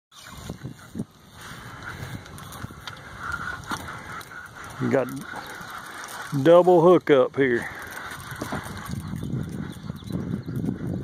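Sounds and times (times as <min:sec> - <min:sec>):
fishing reel drag buzzing: 0:07.5 - 0:10.7.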